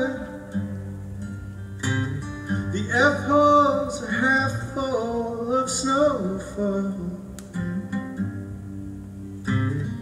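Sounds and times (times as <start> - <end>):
guitar picking ringing notes: 0.0 - 6.1, 7.3 - 10.0.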